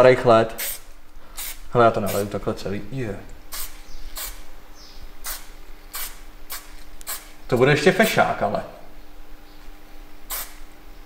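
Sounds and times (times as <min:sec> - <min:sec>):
aerosol spray can hissing: 0:03.5 - 0:04.5, 0:05.2 - 0:07.4, 0:10.3 - 0:10.6.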